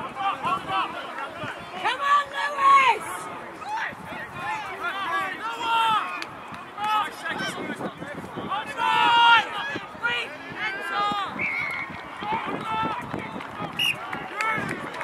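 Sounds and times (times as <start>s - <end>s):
people shouting across a pitch: 0.0s - 15.0s.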